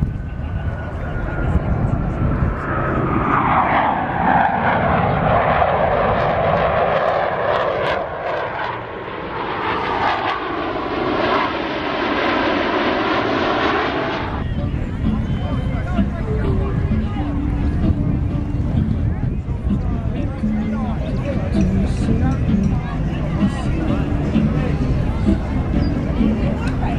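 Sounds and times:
jet whine falling in pitch: 0.0 - 18.6
jet roar flying past: 0.0 - 26.9.

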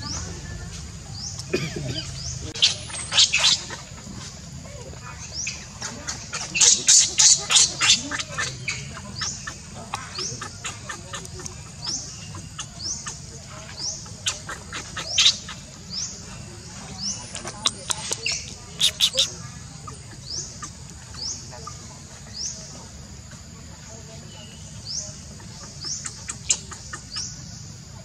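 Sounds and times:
infant monkey crying and squealing: 18.6 - 19.4.

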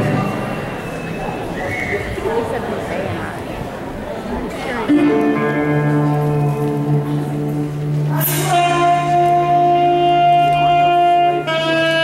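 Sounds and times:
audience voices in a hall: 0.0 - 12.0.

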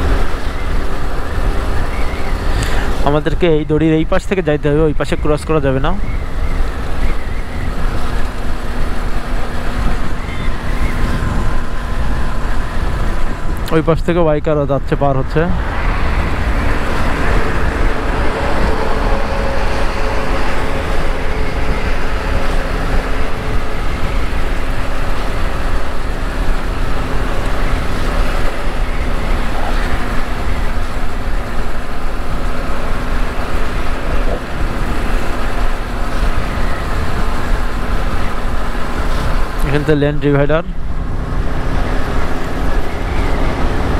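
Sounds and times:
motorcycle engine hum: 0.0 - 43.9
wind noise on microphone: 6.2 - 13.7, 15.5 - 39.9.

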